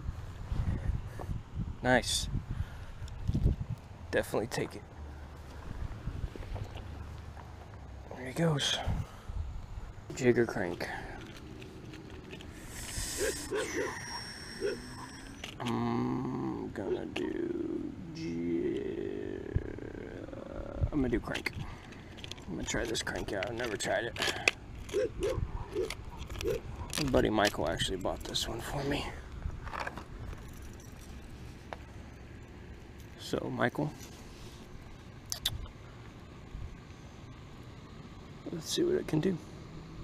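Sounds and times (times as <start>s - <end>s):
low outdoor rumble: 0.0s - 40.0s
faint short calls: 12.5s - 16.0s.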